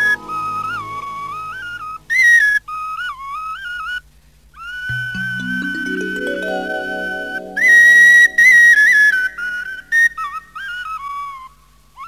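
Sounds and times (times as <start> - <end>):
soft sustained accompaniment: 0.0 - 2.1, 4.9 - 10.6
breathy flute melody: 0.0 - 2.4, 4.9 - 10.6.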